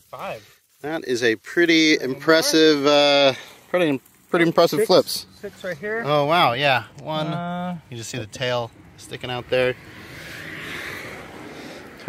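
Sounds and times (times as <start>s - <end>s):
steady outdoor background hiss: 0.0s - 12.0s.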